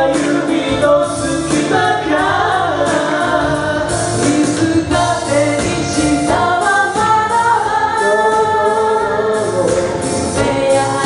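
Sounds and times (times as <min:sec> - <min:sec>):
a cappella group singing: 0:00.0 - 0:11.0.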